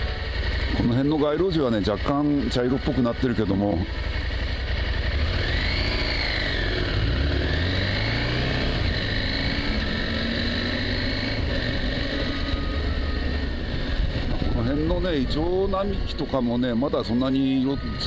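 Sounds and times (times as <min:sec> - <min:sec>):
motorcycle engine accelerating: 0:00.0 - 0:18.0
road and wind noise: 0:00.0 - 0:18.0.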